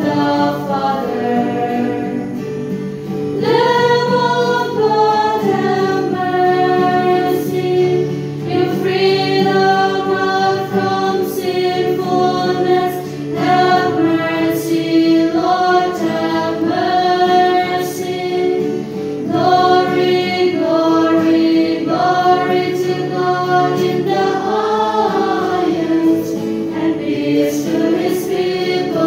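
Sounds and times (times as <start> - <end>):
church choir singing a hymn: 0.0 - 29.0.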